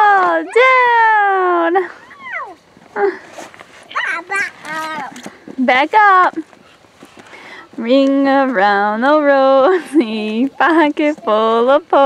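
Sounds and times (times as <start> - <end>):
child's high squeal: 1.9 - 2.6.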